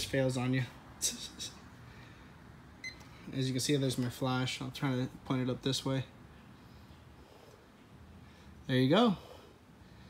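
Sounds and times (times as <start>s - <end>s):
man laughing: 1.0s - 1.7s.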